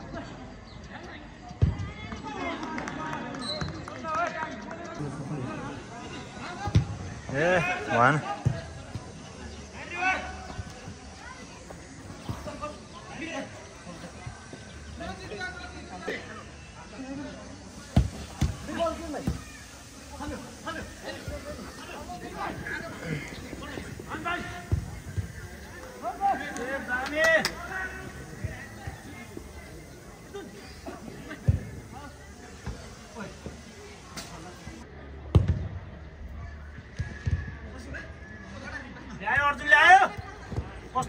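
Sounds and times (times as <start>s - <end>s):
voices calling out: 4.8s - 34.9s.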